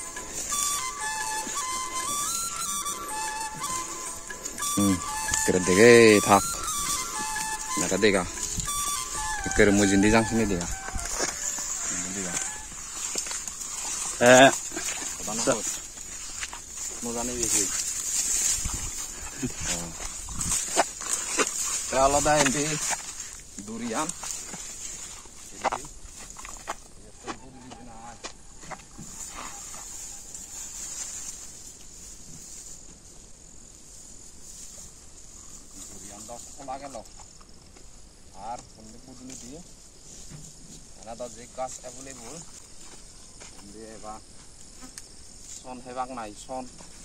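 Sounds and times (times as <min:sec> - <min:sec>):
insects droning in grass: 0:00.0 - 0:47.0
short loud animal call: 0:08.7 - 0:12.8.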